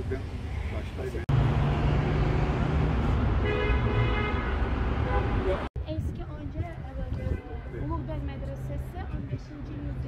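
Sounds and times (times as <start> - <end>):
road traffic noise: 0.0 - 10.0
car horn: 3.3 - 5.7.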